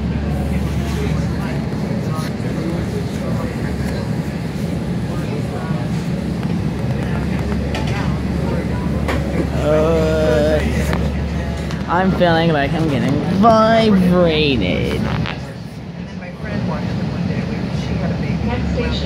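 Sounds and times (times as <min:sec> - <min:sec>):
train car low rumble: 0:00.0 - 0:19.0.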